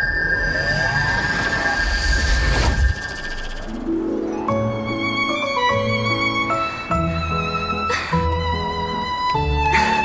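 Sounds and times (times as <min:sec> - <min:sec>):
soft string music: 0:03.8 - 0:10.0.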